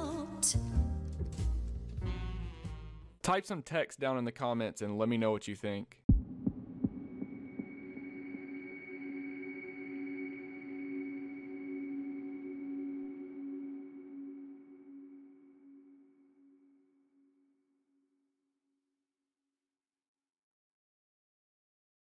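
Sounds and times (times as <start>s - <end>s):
high ringing note: 7.3s - 16.8s
long droning tone: 7.3s - 17.3s.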